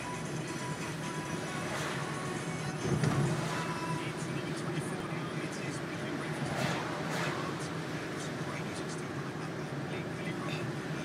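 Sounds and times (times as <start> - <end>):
music playing: 0.0 - 9.0
car engine and road noise: 0.0 - 11.0.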